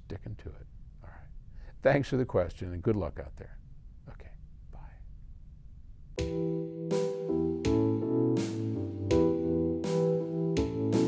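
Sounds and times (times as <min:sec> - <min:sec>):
low room noise: 0:00.0 - 0:06.2
man's faint breathy vocal sounds: 0:04.2 - 0:05.1.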